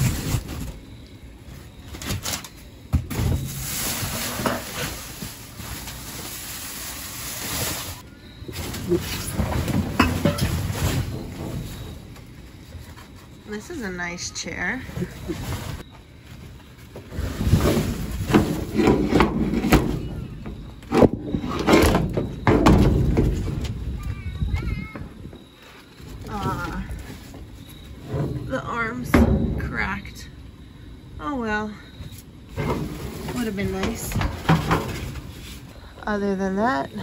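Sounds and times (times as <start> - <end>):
cardboard boxes rustling and scraping: 0.0 - 13.5, 14.7 - 23.8, 32.1 - 35.8.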